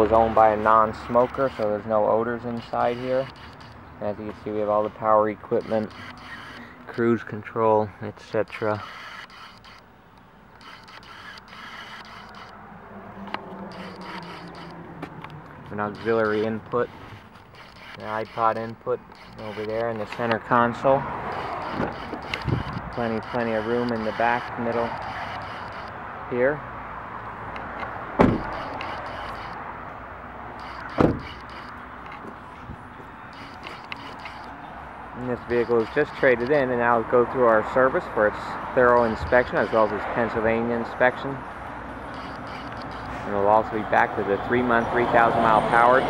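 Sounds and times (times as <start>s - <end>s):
camera scraping and rubbing: 0.0s - 6.8s, 8.3s - 26.4s, 27.5s - 41.2s, 41.9s - 46.0s
steady background noise: 0.0s - 46.0s
sharp click: 8.4s - 12.6s, 13.2s - 16.5s, 17.2s - 20.4s, 21.3s - 26.0s, 27.5s - 29.6s, 30.6s - 32.4s, 33.3s - 34.6s, 42.1s - 43.2s
car door slamming: 28.2s - 28.6s, 30.9s - 31.3s.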